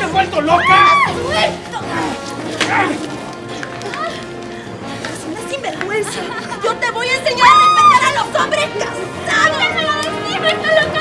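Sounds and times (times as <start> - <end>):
women shrieking and crying out: 0.5 - 1.5, 7.3 - 8.2.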